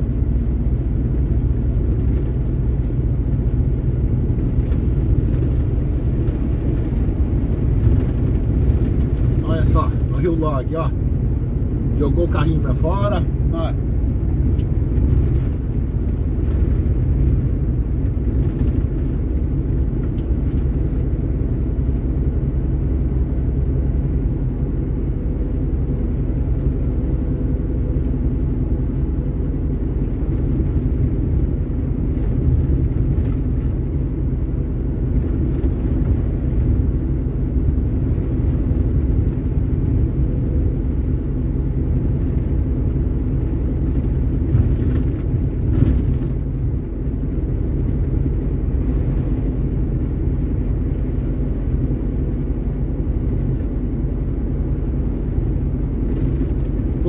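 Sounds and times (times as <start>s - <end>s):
road noise: 0.0s - 57.0s
truck diesel engine drone: 0.0s - 57.0s.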